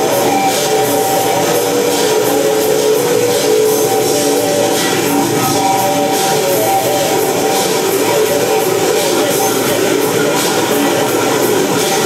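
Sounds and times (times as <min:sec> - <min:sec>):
electric guitar noise music: 0:00.0 - 0:12.0.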